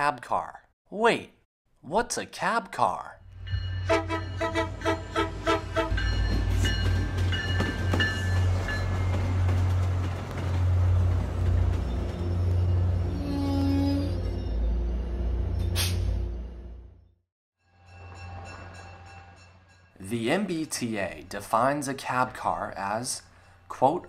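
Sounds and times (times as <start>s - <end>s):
train engine rumble: 3.2s - 16.9s
short train horn toot: 3.8s - 6.0s.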